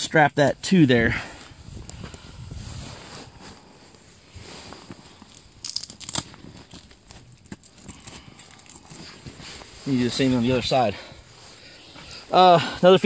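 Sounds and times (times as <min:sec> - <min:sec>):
nylon fabric rustling: 0:02.5 - 0:07.5
strap rasps: 0:04.8 - 0:09.8.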